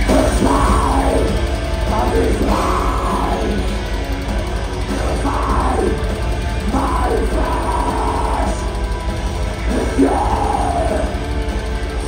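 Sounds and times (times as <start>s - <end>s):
distorted electric guitars: 0.0s - 12.0s
harsh vocal: 0.0s - 12.0s.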